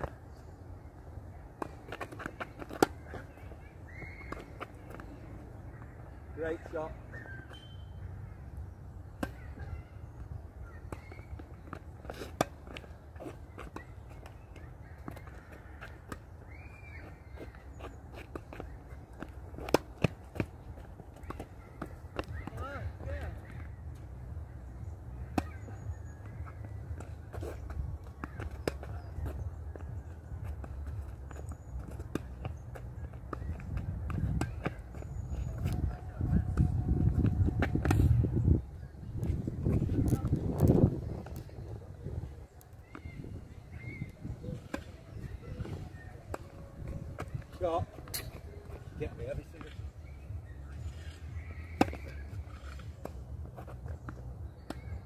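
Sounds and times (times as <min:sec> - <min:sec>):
tennis balls hitting rackets: 0:00.0 - 0:38.4, 0:42.7 - 0:55.0
faint bird chirps: 0:03.1 - 0:11.8, 0:13.2 - 0:19.2, 0:42.5 - 0:46.7, 0:48.1 - 0:53.1.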